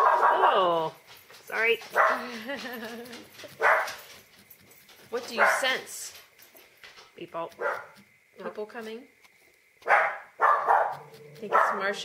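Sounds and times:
dog barking: 0.0s - 0.8s, 2.0s - 2.3s, 3.6s - 4.1s, 5.3s - 5.8s, 7.6s - 8.0s, 9.8s - 12.0s.

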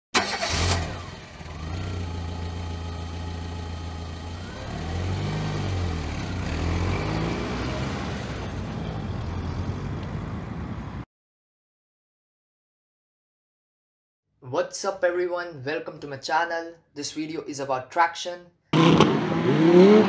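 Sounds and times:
car engine starting and revving: 0.2s - 10.0s, 18.8s - 20.0s.

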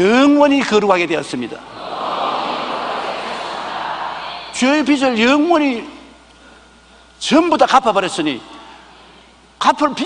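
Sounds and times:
congregation reciting in unison: 1.7s - 4.8s.

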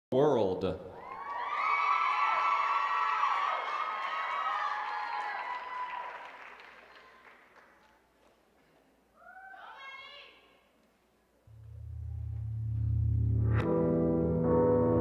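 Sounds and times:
audience cheering and whooping: 1.0s - 6.7s.

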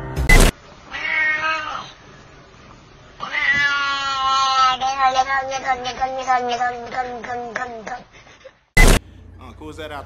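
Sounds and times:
cat meowing: 0.9s - 2.0s, 3.2s - 7.8s.

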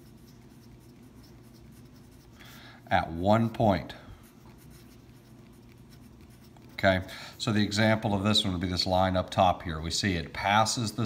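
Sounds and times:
pencil scratching on paper: 0.0s - 8.6s.

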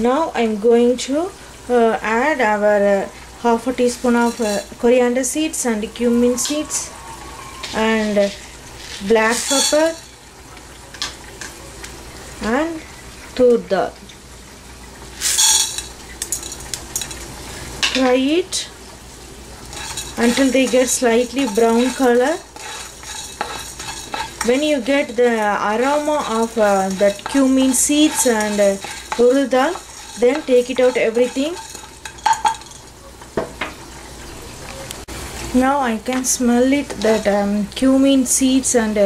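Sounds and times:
lentils rattling into a pan: 3.9s - 4.8s, 7.6s - 10.3s, 15.2s - 17.3s, 19.6s - 33.0s.

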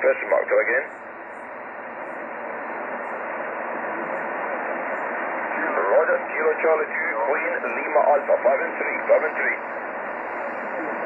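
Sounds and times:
radio receiver hiss and static: 0.0s - 11.0s.

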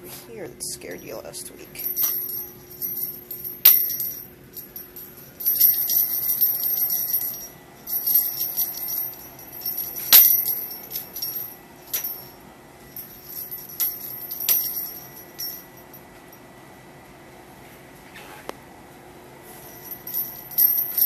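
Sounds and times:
small bell jingling: 1.0s - 12.4s, 13.0s - 16.0s, 19.7s - 21.0s.

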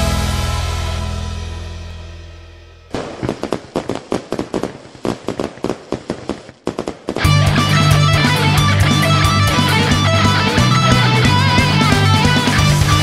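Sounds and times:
rock band playing loudly: 0.0s - 2.5s, 7.2s - 13.0s
held electric guitar chord: 0.0s - 2.9s, 7.3s - 13.0s
firecrackers popping and crackling: 2.9s - 13.0s.

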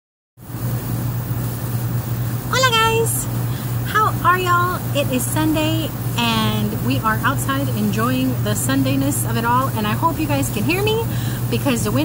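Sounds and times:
air-conditioning unit humming: 0.4s - 12.0s.

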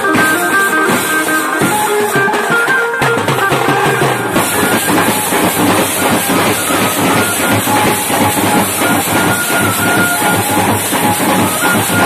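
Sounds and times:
drum band drumming: 0.0s - 12.0s
faint high held tones: 0.0s - 12.0s.

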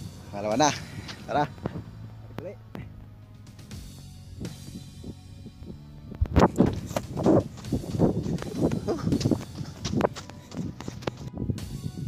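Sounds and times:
man breathing while jogging: 0.0s - 2.2s, 3.6s - 12.0s
jogging footfalls: 3.8s - 11.8s.

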